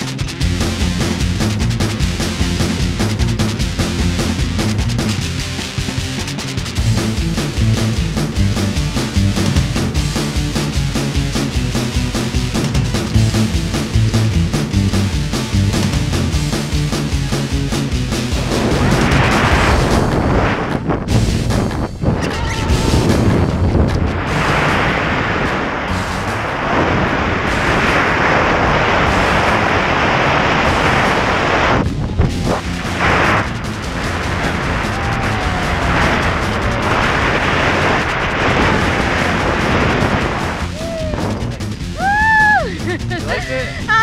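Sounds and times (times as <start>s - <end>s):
music soundtrack: 0.0s - 44.0s
wind roar buffeting microphone: 0.0s - 44.0s.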